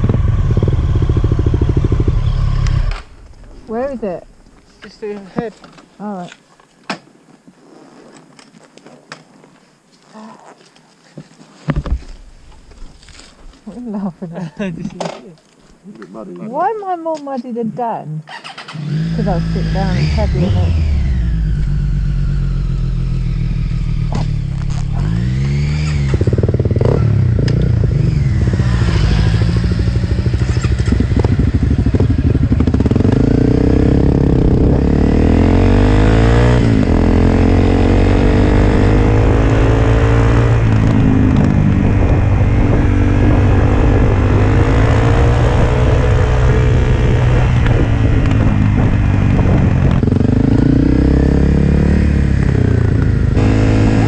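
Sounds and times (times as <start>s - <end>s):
motorcycle idling rumble: 0.0s - 6.2s, 19.2s - 34.9s.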